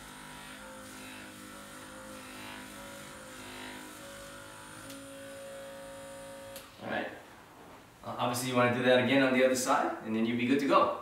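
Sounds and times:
massage gun motor hum: 0.0s - 6.7s.

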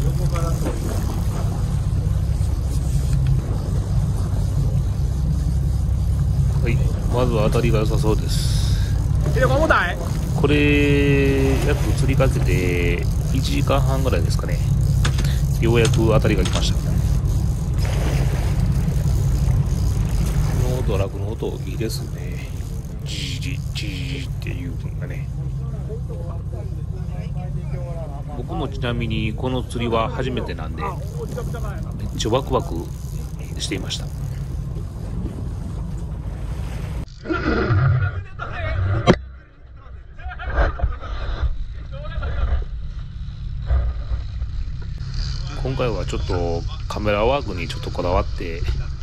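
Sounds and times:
voices: 0.0s - 36.3s, 37.3s - 43.9s, 45.0s - 49.0s
fishing reel drag buzzing: 0.0s - 37.3s, 42.5s - 49.0s
water noise: 0.0s - 37.8s
boat engine rumbling: 0.0s - 49.0s.

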